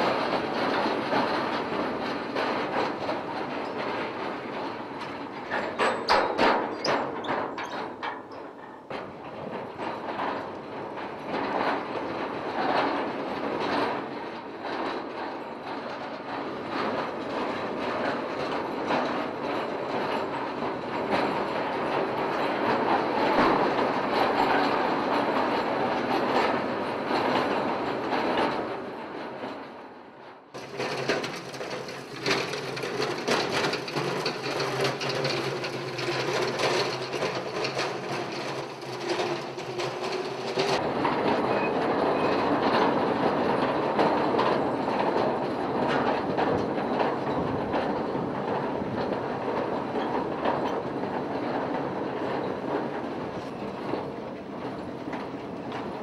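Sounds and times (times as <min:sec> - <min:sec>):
mine car wheels rattling on rails: 0:00.0 - 0:56.0.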